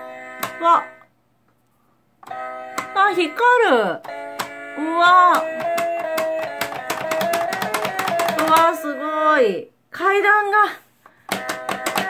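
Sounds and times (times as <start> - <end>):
electronic toy piano note: 0.0 - 1.1, 2.2 - 9.2.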